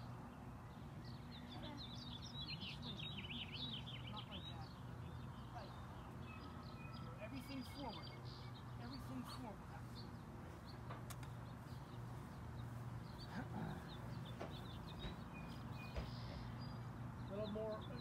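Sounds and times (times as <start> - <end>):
small birds chirping: 0.0 - 18.0
faint distant voices: 0.7 - 18.0.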